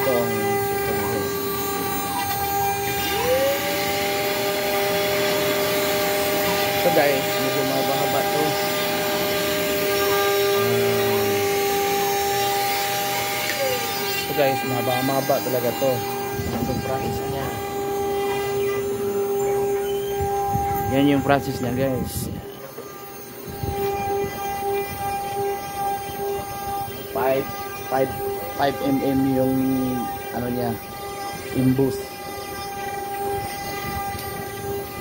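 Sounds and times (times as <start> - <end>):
machine hiss: 0.0 - 35.0
router spindle high-pitched whine: 0.0 - 35.0.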